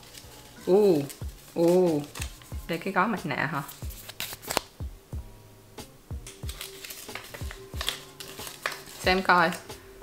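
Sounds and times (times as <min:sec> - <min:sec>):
foil sachet crinkling: 0:00.0 - 0:03.0, 0:06.3 - 0:09.7.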